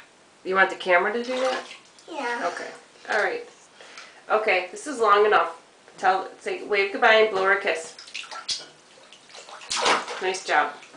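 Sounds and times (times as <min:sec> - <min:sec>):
bathwater sloshing: 0:01.2 - 0:03.3, 0:07.3 - 0:10.9
water splash: 0:01.3 - 0:01.9, 0:07.9 - 0:10.9.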